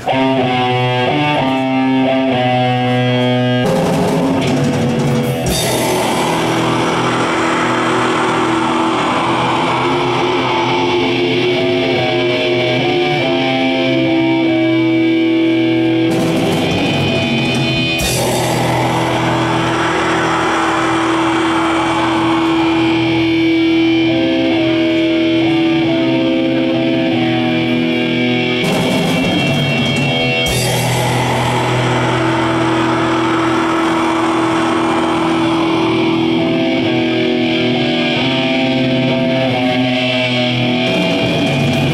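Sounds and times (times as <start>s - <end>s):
distorted electric guitars: 0.0s - 41.9s
wash of noise: 18.1s - 23.9s, 30.7s - 37.6s.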